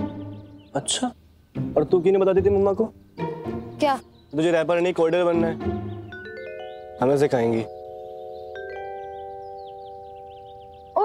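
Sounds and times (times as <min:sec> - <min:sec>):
held chime-like chord: 0:06.1 - 0:11.0.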